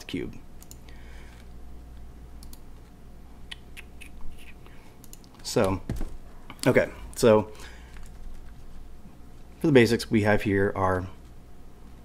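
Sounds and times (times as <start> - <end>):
steady low hum: 0.0 - 12.0
computer mouse clicks: 0.6 - 1.5, 2.4 - 2.6, 3.5 - 5.8.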